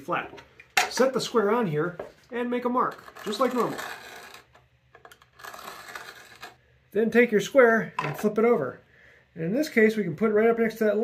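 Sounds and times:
knife scratching wood: 2.9 - 6.6.

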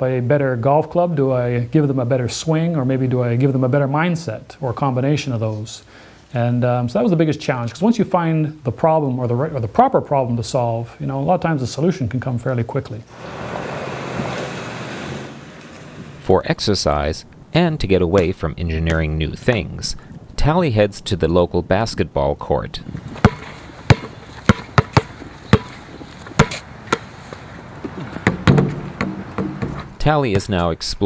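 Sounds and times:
car driving on asphalt: 13.1 - 16.3
basketball bouncing on court: 23.2 - 27.1, 28.2 - 29.9.

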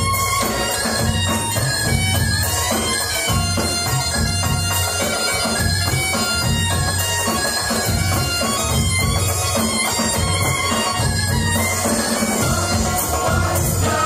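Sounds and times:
reedy wind instrument: 0.0 - 14.0.

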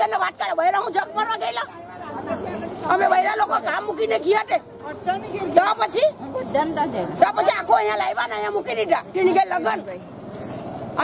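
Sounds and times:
women talking: 0.0 - 10.1.

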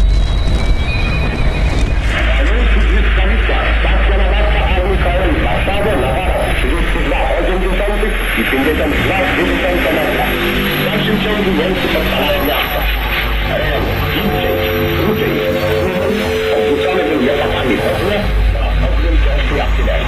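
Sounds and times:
dark ambient music with drone: 0.0 - 20.0
muffled radio-like voice: 2.0 - 20.0.

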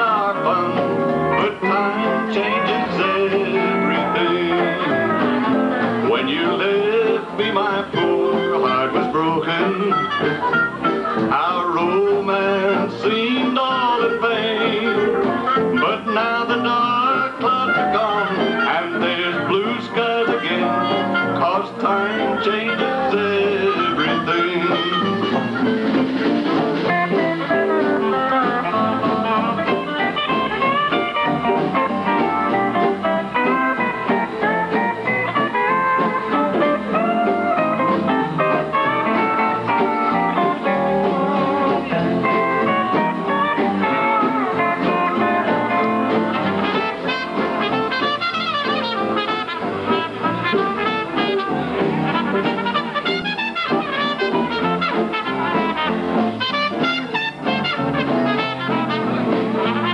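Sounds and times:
drum kit: 0.0 - 59.9
fiddles: 0.0 - 59.9
pedal steel guitar: 0.0 - 59.9.

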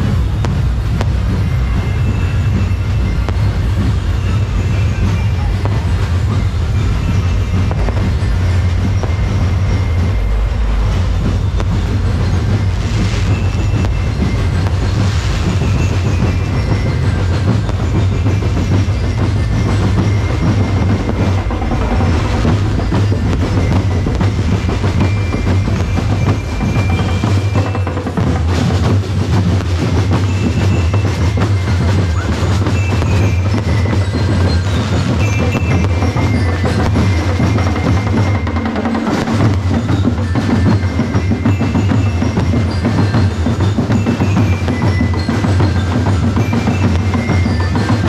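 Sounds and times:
steady low rumble: 0.0 - 40.1
fireworks bursts: 0.0 - 48.0
fireworks crackling: 0.0 - 48.0.

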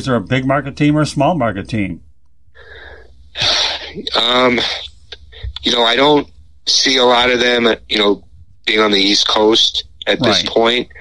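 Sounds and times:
loud burst of breath: 2.6 - 4.0
person breathing in: 2.6 - 4.0.

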